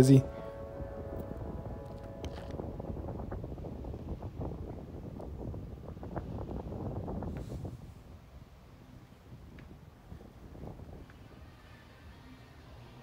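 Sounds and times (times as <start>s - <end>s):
wind buffeting microphone: 0.0s - 12.2s.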